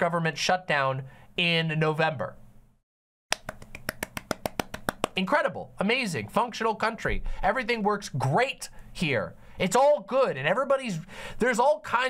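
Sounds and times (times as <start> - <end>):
rapid light hand claps: 3.3 - 5.2.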